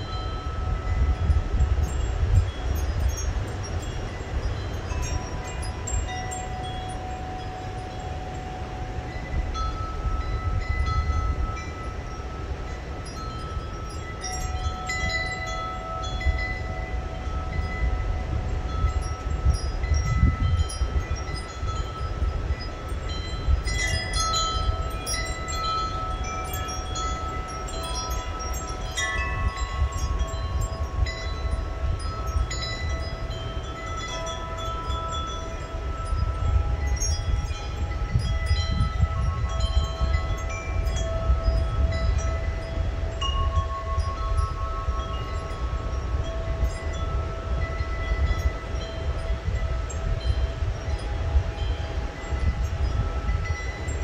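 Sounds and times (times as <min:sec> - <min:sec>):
wind chimes ringing: 0:00.0 - 0:54.0.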